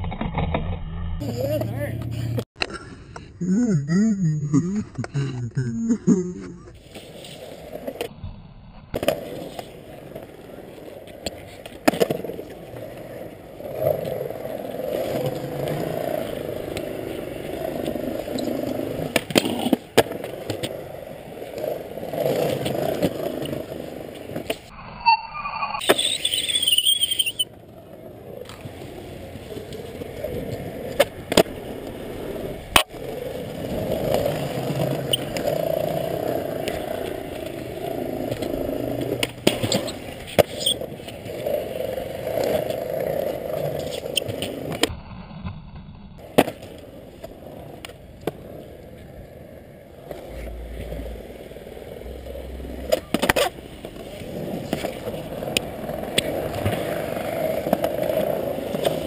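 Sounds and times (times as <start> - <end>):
skateboard wheels rolling on concrete: 0.0 - 3.3, 4.4 - 25.2, 25.8 - 59.0
skateboards clacking on ground: 9.0 - 24.7, 25.8 - 44.9, 46.2 - 59.0
high squeal: 24.8 - 27.5, 39.7 - 40.8.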